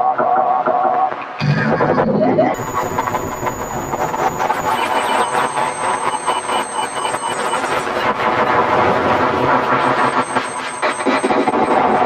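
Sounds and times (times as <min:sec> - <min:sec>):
distorted electronic noise music: 0:00.0 - 0:12.0.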